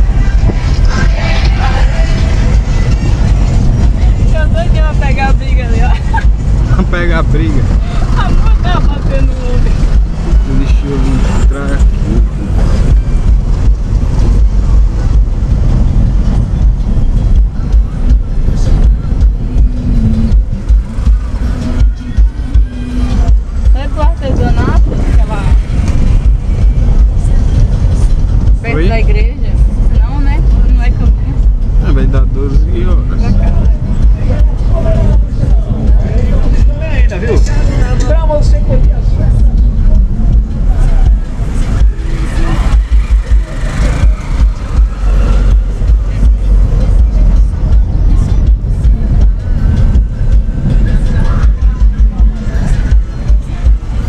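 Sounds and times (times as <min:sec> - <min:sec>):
car cabin rumble over cobblestones: 0:00.0 - 0:54.0
voices: 0:00.0 - 0:54.0.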